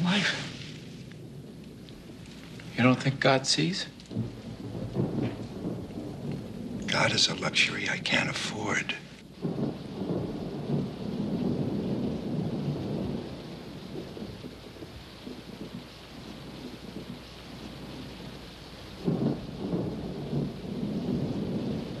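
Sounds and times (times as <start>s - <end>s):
rolling thunder: 0.0s - 22.0s
steady rain: 0.0s - 22.0s.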